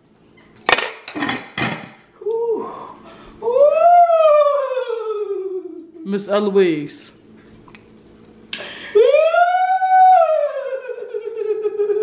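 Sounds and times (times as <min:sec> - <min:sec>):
woman wailing: 0:02.2 - 0:06.0, 0:08.9 - 0:12.0.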